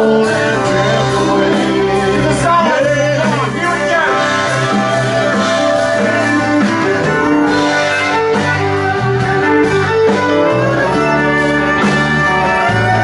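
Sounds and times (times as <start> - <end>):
electric guitar: 0.0 - 13.0
live country-rock band playing: 0.0 - 13.0.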